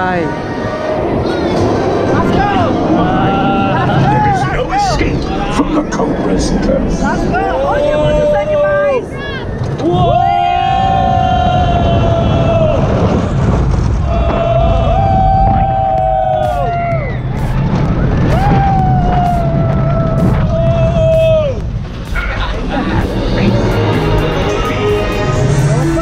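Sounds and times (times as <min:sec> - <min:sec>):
roller coaster car rumbling: 0:00.0 - 0:26.0
roller coaster riders yelling: 0:00.0 - 0:26.0
wind rush: 0:00.0 - 0:26.0.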